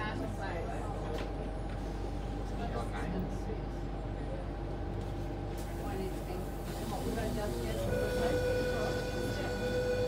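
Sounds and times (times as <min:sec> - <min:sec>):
quiet passenger chatter: 0:00.0 - 0:10.0
train carriage hum: 0:00.0 - 0:10.0.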